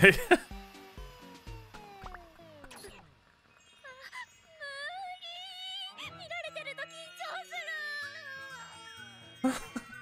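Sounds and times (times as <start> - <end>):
light background music: 0.0 - 3.0, 4.3 - 10.0.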